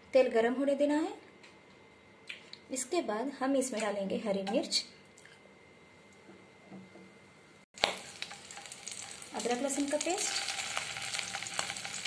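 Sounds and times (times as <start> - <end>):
chillies frying in oil: 7.8 - 12.0.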